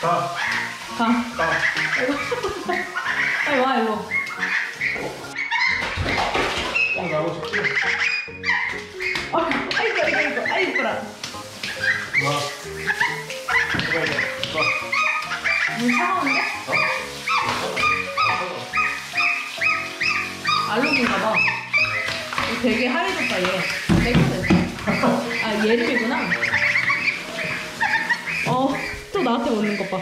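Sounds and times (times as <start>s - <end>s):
background music: 0.0s - 30.0s
goslings peeping: 0.0s - 30.0s.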